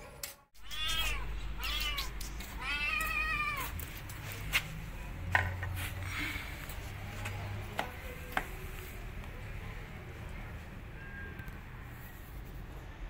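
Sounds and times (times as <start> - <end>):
kitten meowing: 0.6 - 3.7.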